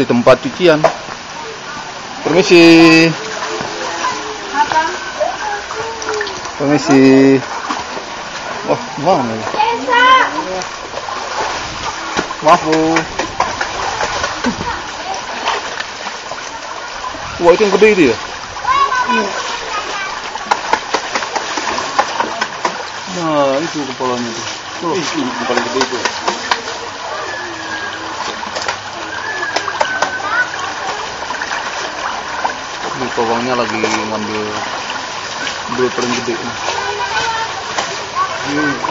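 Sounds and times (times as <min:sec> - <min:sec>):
steady rush of moving water: 0:00.0 - 0:38.9
water splashing in a pool: 0:00.0 - 0:38.9
faint voices: 0:01.1 - 0:38.9.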